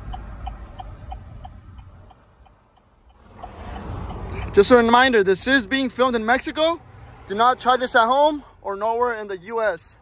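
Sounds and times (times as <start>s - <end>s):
pickup truck rolling on road: 0.0s - 6.8s.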